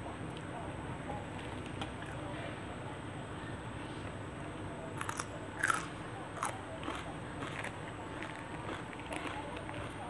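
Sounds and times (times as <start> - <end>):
person chewing crunchy food: 5.0 - 10.0.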